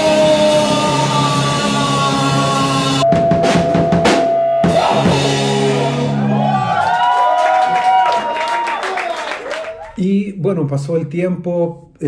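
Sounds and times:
live rock band playing: 0:00.0 - 0:06.4
drum strikes: 0:02.9 - 0:06.0.

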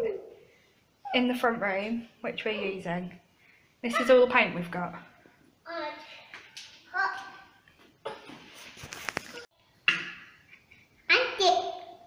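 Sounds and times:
faint handling noise: 0:08.3 - 0:09.5.

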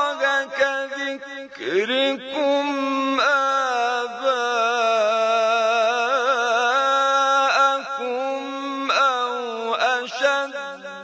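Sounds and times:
man reciting in melodic chant: 0:00.0 - 0:11.0.

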